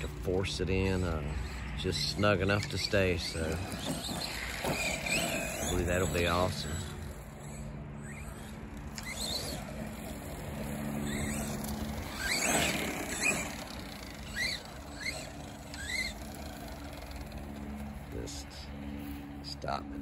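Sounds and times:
electric motor whining: 0.0s - 20.0s.

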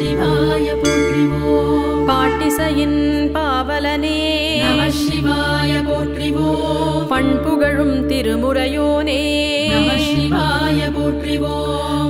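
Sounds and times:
steady drone: 0.0s - 8.4s, 9.6s - 11.4s
instrumental accompaniment: 0.0s - 11.1s
woman singing devotional chant: 0.0s - 12.0s.

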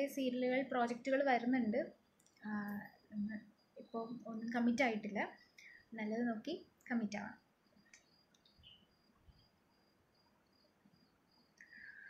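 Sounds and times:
woman speaking: 0.0s - 5.4s, 6.0s - 7.4s
soft clicks: 2.2s - 2.8s.

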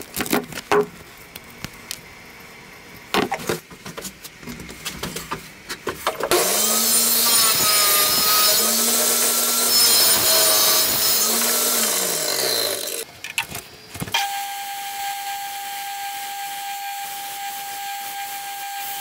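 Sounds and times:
table saw cutting wood: 6.3s - 13.0s, 14.2s - 19.0s
belt grinder whine: 6.3s - 13.1s, 14.1s - 19.0s.

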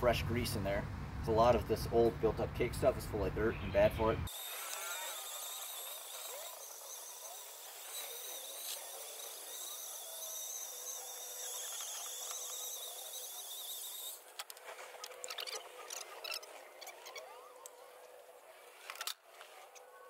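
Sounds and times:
wire brush wheel whining: 4.3s - 20.0s.

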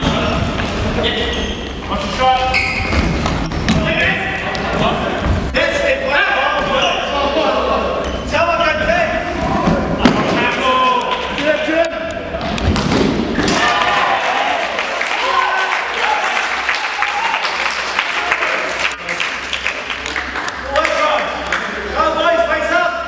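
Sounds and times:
players shouting: 13.3s - 18.5s.

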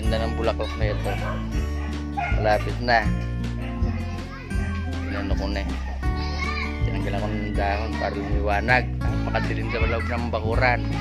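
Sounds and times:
steady bass line: 0.0s - 11.0s.

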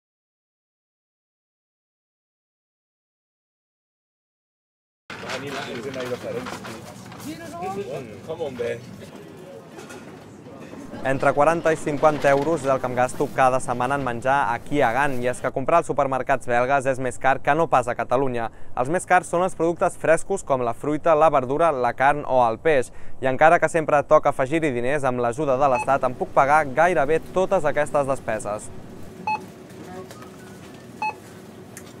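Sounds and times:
murmur of busy shop: 5.1s - 15.6s, 25.4s - 32.0s
shoppers talking indistinctly: 5.1s - 15.6s, 25.6s - 31.3s
store background: 5.1s - 32.0s
checkout electronic beep: 25.7s - 26.1s, 29.2s - 31.3s.

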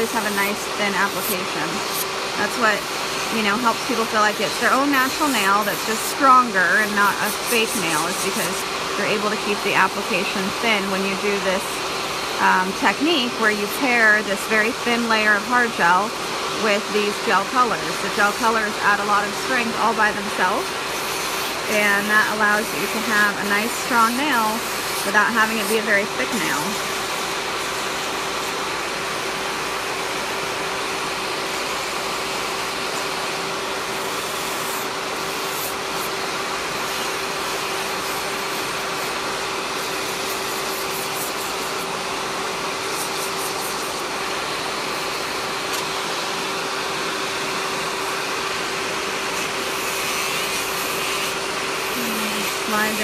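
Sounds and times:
dust collector fan rushing: 0.0s - 53.0s
electric nail file humming: 0.0s - 53.0s.

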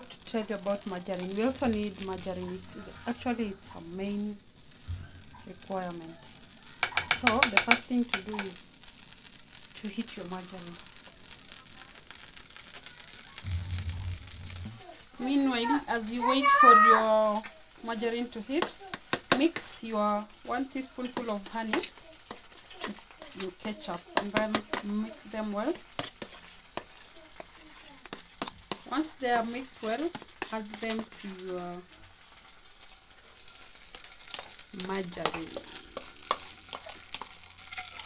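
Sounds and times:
margarine sizzling in frying pan: 0.0s - 38.0s
low rumble: 13.4s - 15.0s.

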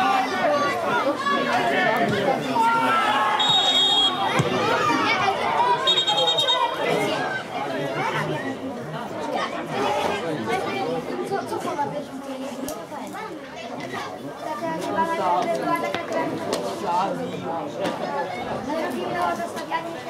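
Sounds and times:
people calling out and talking: 0.0s - 20.0s
referee's whistle blast: 3.3s - 4.4s, 5.8s - 6.8s.

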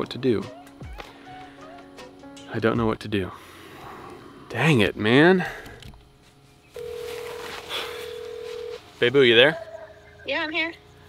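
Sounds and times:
phone ringback tone: 6.8s - 8.9s.

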